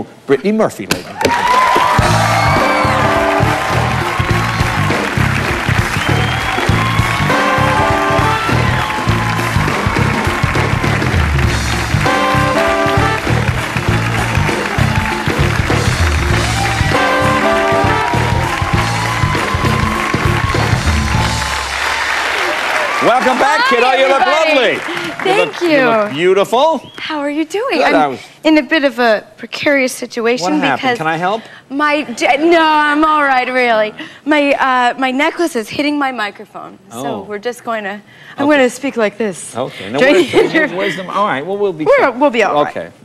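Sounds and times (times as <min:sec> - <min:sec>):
audience applause: 0:01.2 - 0:26.7
band playing upbeat tune with brass: 0:02.0 - 0:26.2.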